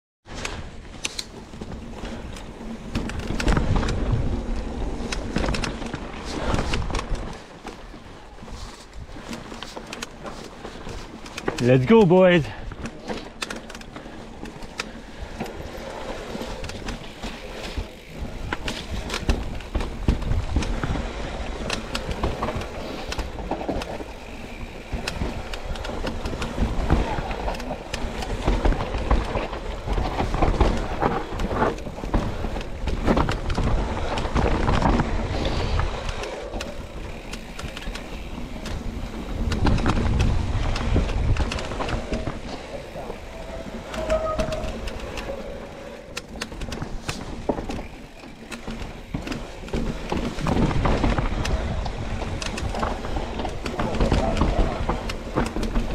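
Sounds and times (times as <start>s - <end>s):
bike clattering and rattling: 0.2s - 55.9s
bike tyres on dirt and rock: 0.2s - 55.9s.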